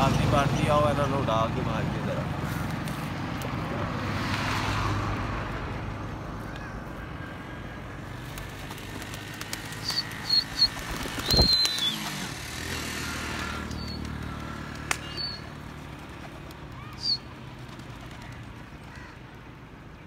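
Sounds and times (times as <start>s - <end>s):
high bird chirps: 9.7s - 12.1s, 13.6s - 14.2s.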